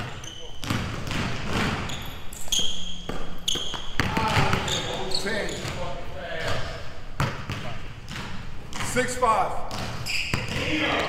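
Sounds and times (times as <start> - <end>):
sneaker squeaks: 0.0 - 8.8, 9.7 - 11.0
basketball bouncing on wooden floor: 0.6 - 2.0, 3.1 - 4.8, 7.2 - 8.9, 9.7 - 10.7.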